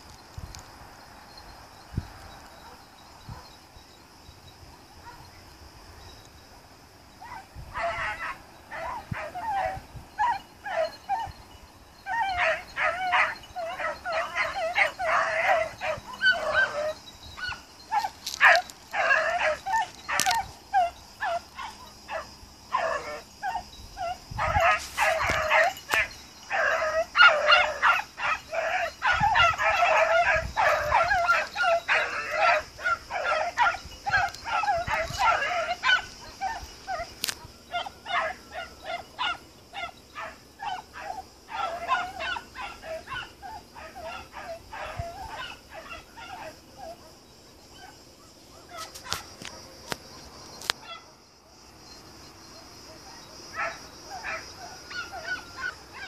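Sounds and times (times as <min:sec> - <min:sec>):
hounds baying and yelping: 0:02.4 - 0:03.6, 0:07.2 - 0:56.0.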